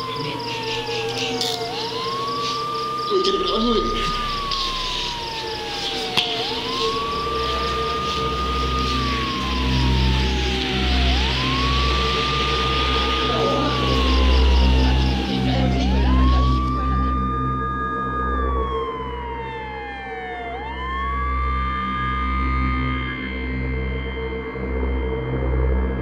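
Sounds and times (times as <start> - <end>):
police siren wailing: 0.0 - 23.6.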